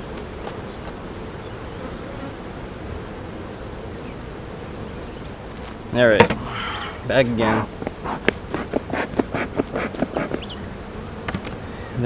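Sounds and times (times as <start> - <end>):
honeybees buzzing: 0.0 - 12.0
bee smoker bellows puffs: 4.8 - 12.0.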